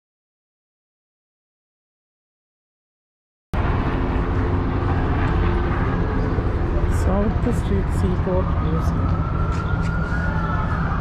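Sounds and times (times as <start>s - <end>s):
city traffic rumble: 3.6s - 11.0s
faint engine hum: 3.6s - 11.0s.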